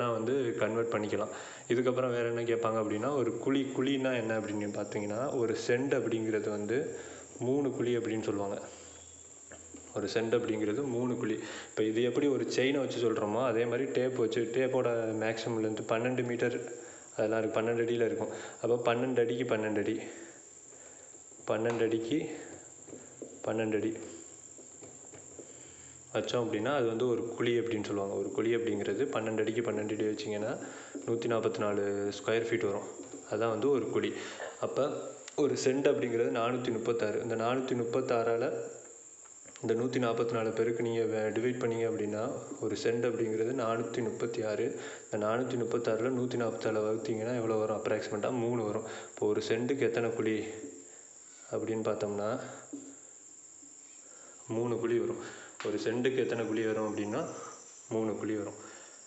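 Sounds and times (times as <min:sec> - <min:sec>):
man speaking: 0:00.0 - 0:08.8, 0:09.9 - 0:20.3, 0:21.5 - 0:22.6, 0:23.4 - 0:24.2, 0:26.1 - 0:38.8, 0:39.6 - 0:50.8, 0:51.5 - 0:52.8, 0:54.5 - 0:58.7
faint high-pitched tone: 0:02.6 - 0:06.7, 0:55.6 - 0:58.9
steady high-pitched trill: 0:55.8 - 0:58.5.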